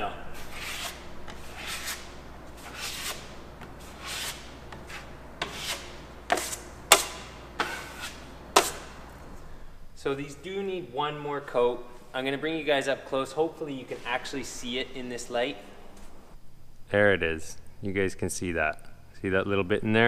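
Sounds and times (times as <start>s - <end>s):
drywall knife scraping: 0.3s - 9.0s.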